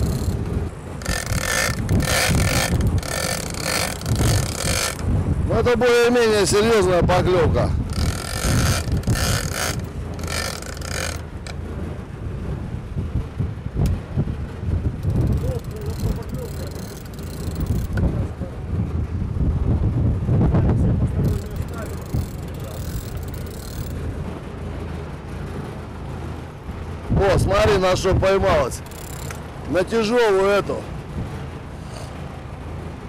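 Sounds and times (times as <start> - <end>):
rushing water from wake: 0.0 - 19.1, 20.5 - 33.0
boat engine running steadily: 0.0 - 33.0
wind: 0.0 - 33.0.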